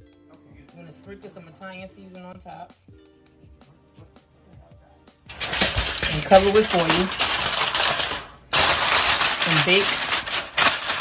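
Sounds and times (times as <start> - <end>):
aluminium foil crinkling: 5.3 - 11.0.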